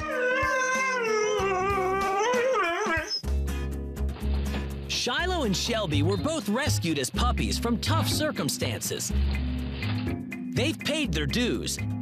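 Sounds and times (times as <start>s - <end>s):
huskies howling: 0.0s - 3.2s
background music: 0.0s - 12.0s.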